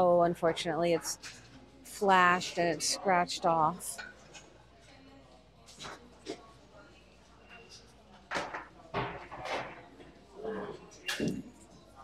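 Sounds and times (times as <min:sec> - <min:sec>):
murmur of voice: 0:00.0 - 0:12.0.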